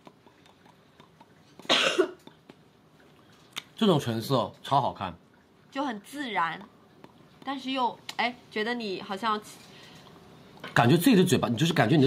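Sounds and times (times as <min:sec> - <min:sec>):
person coughing: 0:01.6 - 0:02.3.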